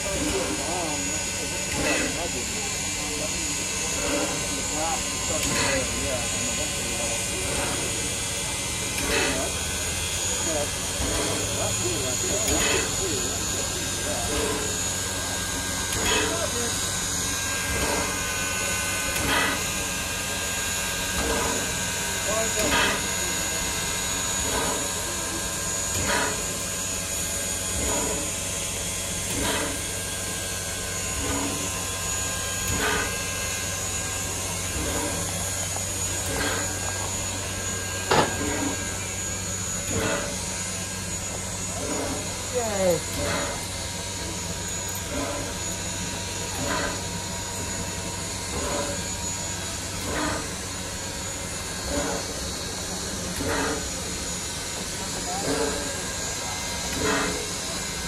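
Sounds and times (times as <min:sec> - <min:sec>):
steam locomotive hissing: 0:00.0 - 0:58.0.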